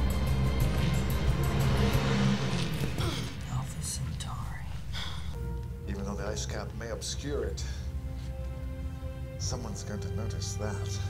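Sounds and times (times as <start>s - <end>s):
dramatic orchestral music: 0.0s - 11.0s.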